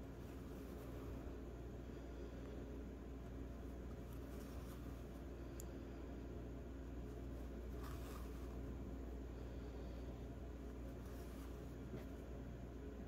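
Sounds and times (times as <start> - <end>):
low room hum: 0.0 - 13.0
yarn needle scratching through yarn: 3.6 - 5.3, 7.0 - 8.7, 10.7 - 12.2.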